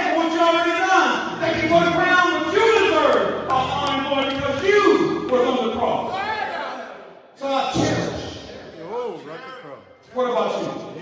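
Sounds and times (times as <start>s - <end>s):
man preaching into microphone: 0.0s - 6.6s, 7.4s - 11.0s.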